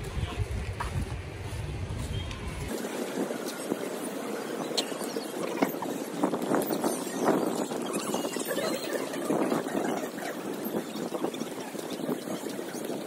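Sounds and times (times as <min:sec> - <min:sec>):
footsteps on concrete: 0:00.0 - 0:02.4
outdoor ambience: 0:00.0 - 0:13.0.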